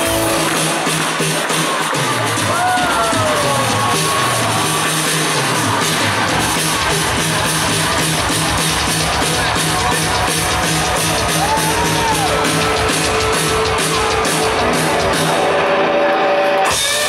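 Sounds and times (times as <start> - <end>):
live pop-rock band playing: 0.0 - 17.0.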